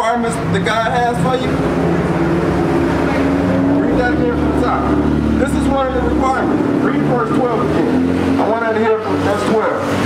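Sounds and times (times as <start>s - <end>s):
vehicle engine passing by: 0.2s - 10.0s.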